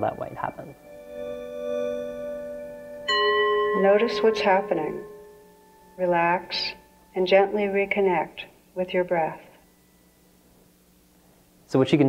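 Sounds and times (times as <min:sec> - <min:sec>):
bell-like chime ringing: 0:00.0 - 0:07.8.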